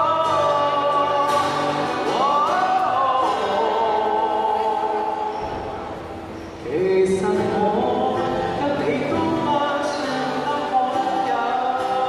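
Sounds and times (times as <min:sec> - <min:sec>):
man singing long held notes: 0:00.0 - 0:05.8, 0:06.7 - 0:12.0
acoustic guitar: 0:00.0 - 0:12.0.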